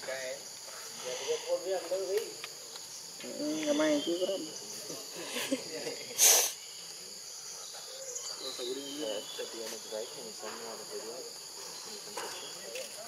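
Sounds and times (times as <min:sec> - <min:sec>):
insects buzzing: 0:00.0 - 0:13.0.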